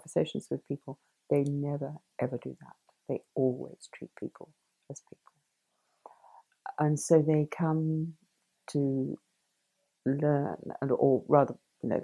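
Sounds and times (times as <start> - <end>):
woman speaking: 0.0 - 5.1, 6.7 - 8.1, 8.7 - 9.2, 10.1 - 12.0
soft in-breath: 5.7 - 6.5.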